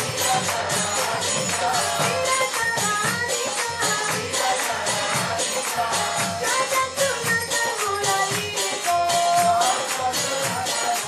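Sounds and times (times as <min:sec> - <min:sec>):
jingling hand cymbals: 0:00.0 - 0:11.0
voices singing devotional music: 0:00.0 - 0:11.0.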